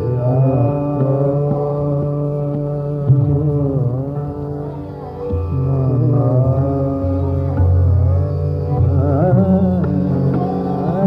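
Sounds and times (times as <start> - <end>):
man singing classical vocal: 0.0 - 11.0
tanpura drone: 0.0 - 11.0.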